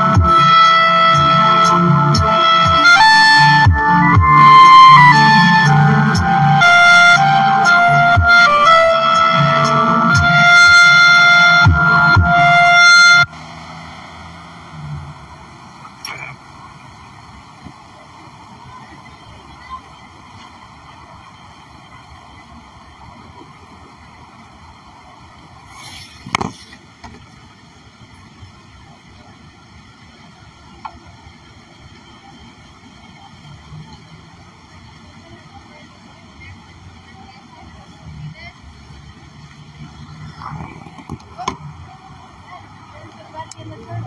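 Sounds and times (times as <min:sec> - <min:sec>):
distant voices: 0:00.0 - 0:44.0
traffic noise: 0:00.0 - 0:44.0.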